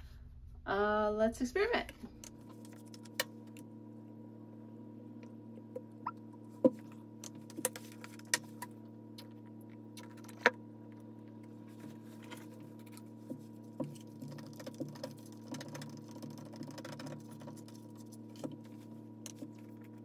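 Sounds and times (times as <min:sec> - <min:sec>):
steady low hum: 0:00.0 - 0:20.0
plastic bottles clicking and tapping: 0:13.3 - 0:17.8.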